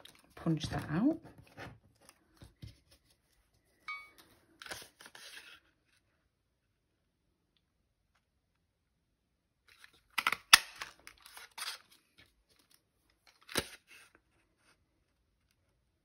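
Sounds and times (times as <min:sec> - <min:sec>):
card rustling and scraping: 0:00.0 - 0:06.1, 0:09.7 - 0:15.1.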